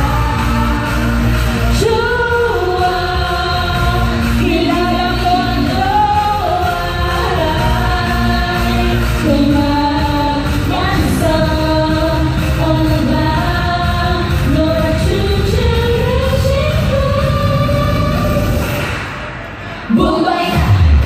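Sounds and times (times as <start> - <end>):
women singing into microphones: 0.0 - 18.8, 19.8 - 21.0
bass-heavy backing track: 0.0 - 19.2.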